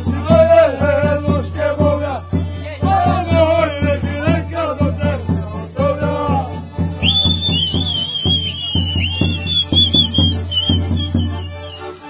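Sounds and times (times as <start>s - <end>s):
fiddle and accordion folk band: 0.0s - 12.0s
shrill warbling whistle melody: 6.8s - 12.0s.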